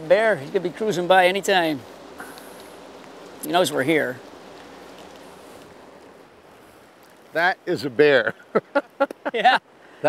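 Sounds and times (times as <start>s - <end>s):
river rushing over rocks: 0.0s - 8.2s.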